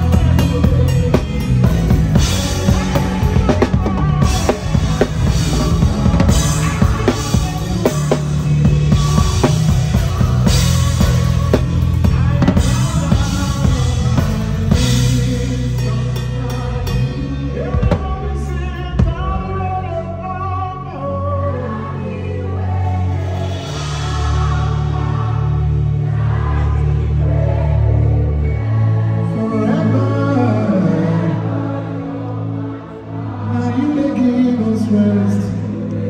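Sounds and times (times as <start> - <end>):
drum kit playing a groove: 0.0 - 19.7
sustained low bass notes: 0.0 - 36.0.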